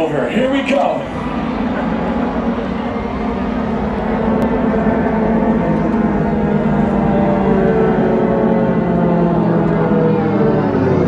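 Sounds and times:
low sustained drone: 0.0s - 11.0s.

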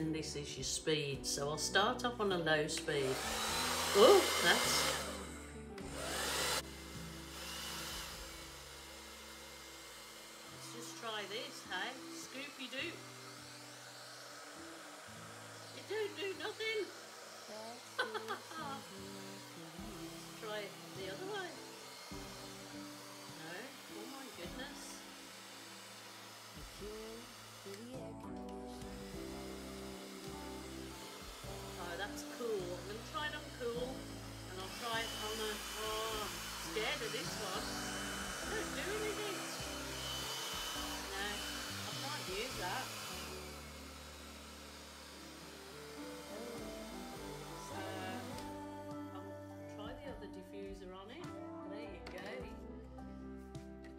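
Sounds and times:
background music: 0.0s - 53.9s
hair dryer blowing: 1.7s - 50.2s.

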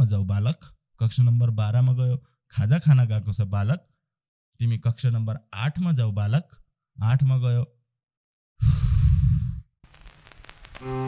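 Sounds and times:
man sighing: 8.6s - 9.6s.

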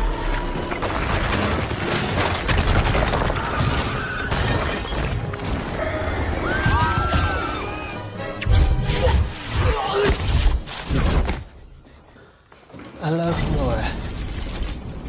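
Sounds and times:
debris crashing and clattering: 0.0s - 7.7s, 13.0s - 15.0s
film score music: 0.0s - 13.2s.

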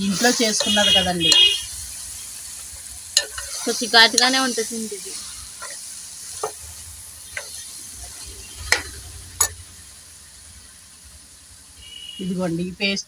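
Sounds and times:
meat sizzling in a pot: 0.0s - 13.0s.

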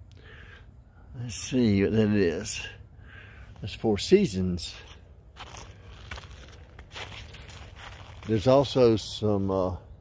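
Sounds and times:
footsteps crunching on snow: 4.6s - 9.5s.

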